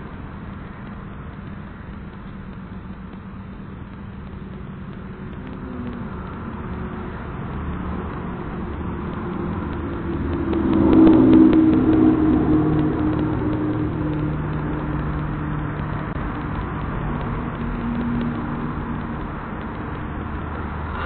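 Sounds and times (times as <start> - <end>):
engine running: 0.0 - 21.0.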